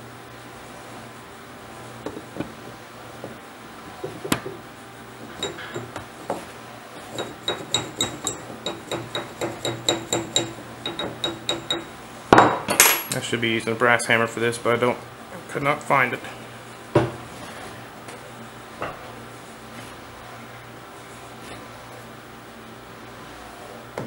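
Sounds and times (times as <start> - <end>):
hammer tapping on metal: 5.3 - 6.0, 7.1 - 13.0.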